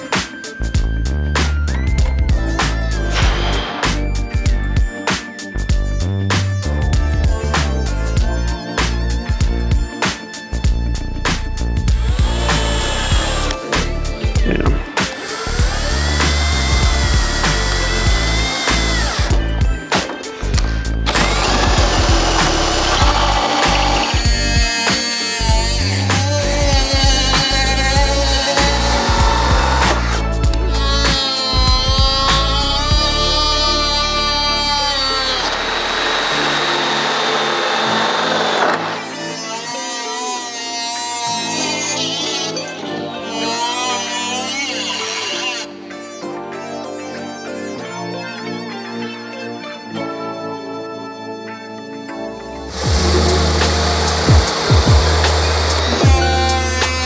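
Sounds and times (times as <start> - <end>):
background music: 0.0 - 57.0
hole saw drill whining: 2.4 - 4.3, 11.0 - 45.8, 52.7 - 57.0
cutoff wheel grinding metal: 11.9 - 13.7, 15.1 - 42.6, 52.7 - 57.0.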